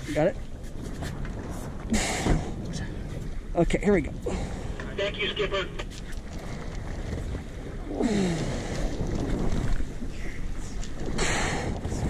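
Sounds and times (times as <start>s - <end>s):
water rushing along boat hull: 0.0s - 12.0s
wind buffeting microphone: 0.0s - 12.0s.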